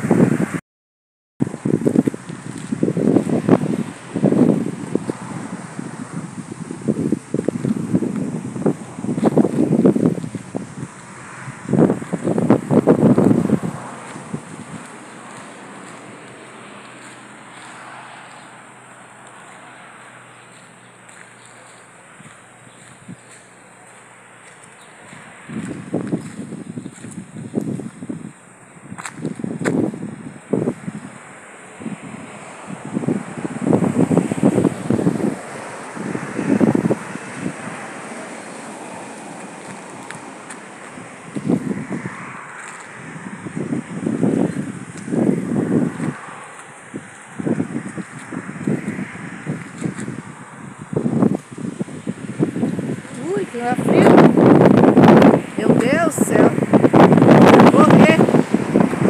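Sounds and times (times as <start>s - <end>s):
wind buffeting microphone: 0.0s - 0.6s, 1.4s - 59.0s.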